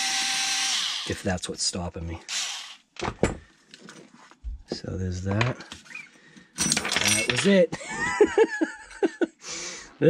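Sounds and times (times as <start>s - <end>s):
man chuckling: 7.7s - 9.4s.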